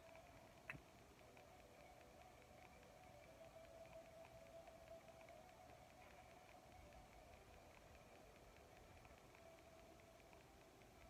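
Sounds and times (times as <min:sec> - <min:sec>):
faint steady hum: 0:00.0 - 0:11.0
light irregular ticking: 0:00.0 - 0:11.0.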